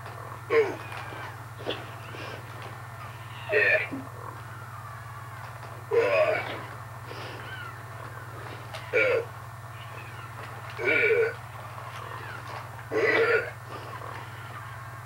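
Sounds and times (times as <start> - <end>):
robot electronic grunting calls: 0.0 - 15.0
steady low hum: 0.0 - 15.0.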